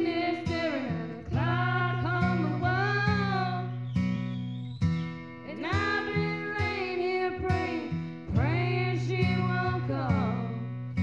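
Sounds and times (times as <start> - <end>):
women singing karaoke: 0.0 - 3.7, 5.5 - 10.6
guitar backing track: 0.0 - 11.0.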